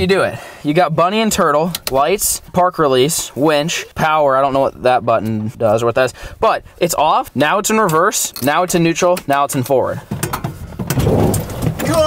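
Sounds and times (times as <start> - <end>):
tyres rolling over snow: 10.6 - 12.0.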